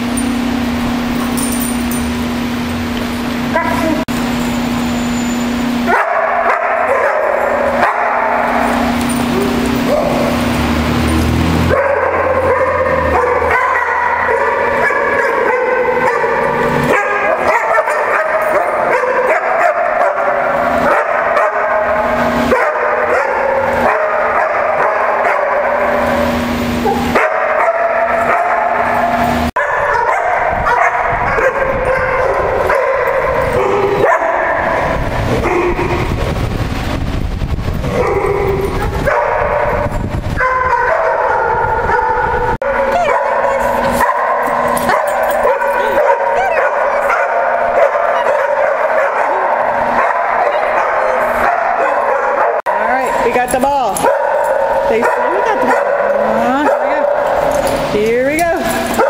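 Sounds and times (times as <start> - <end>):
many dogs barking and yipping: 3.3 - 36.7, 37.8 - 59.0.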